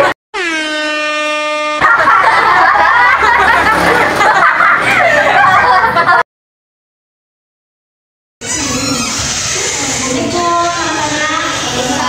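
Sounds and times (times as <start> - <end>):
horn-like steady tone: 0.4 - 1.9.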